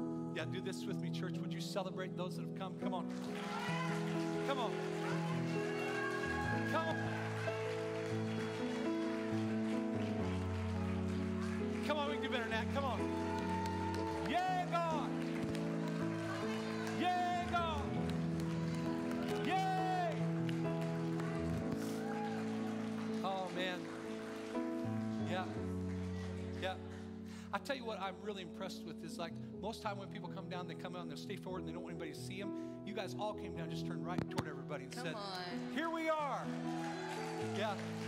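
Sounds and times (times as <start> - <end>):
sustained keyboard chords: 0.0 - 36.7.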